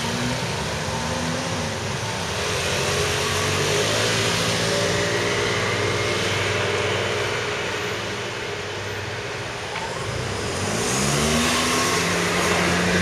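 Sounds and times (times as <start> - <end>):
street noise: 0.0 - 13.0.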